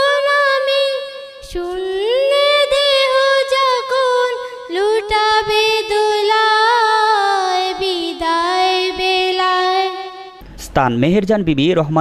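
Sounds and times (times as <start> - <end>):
girls singing unaccompanied: 0.0 - 10.2.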